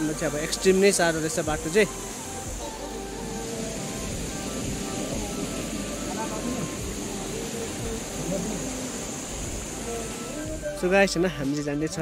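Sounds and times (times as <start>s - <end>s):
faint music: 0.0s - 12.0s
stream running over rocks: 0.0s - 12.0s.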